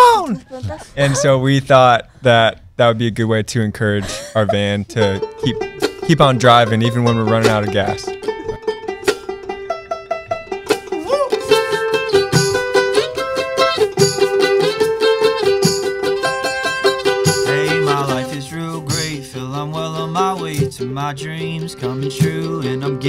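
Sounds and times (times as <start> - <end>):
banjo: 4.5 - 23.0
mandolin melody: 4.5 - 23.0
strummed acoustic guitar: 4.9 - 23.0
person singing: 11.0 - 12.0, 17.2 - 23.0
shaker beat: 11.3 - 18.2.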